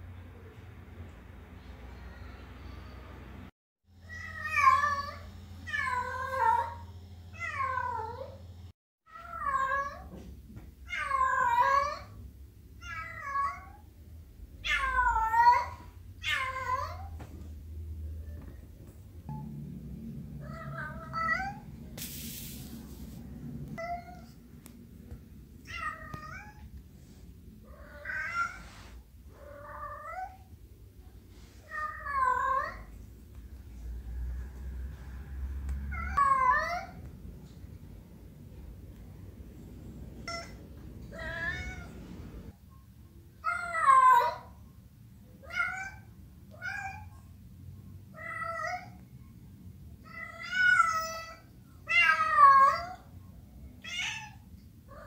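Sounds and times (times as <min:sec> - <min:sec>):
cat meowing: 0:40.2 - 0:42.0.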